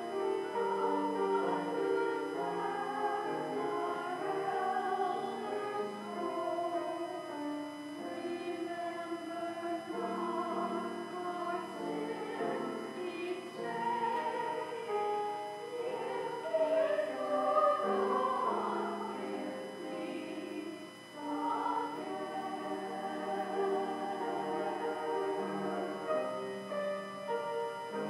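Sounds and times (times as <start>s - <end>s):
choir singing in harmony: 0.0s - 28.0s.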